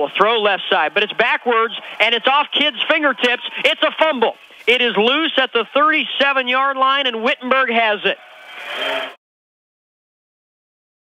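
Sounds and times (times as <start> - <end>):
announcer speaking: 0.0 - 8.2
stadium crowd noise: 0.0 - 9.2.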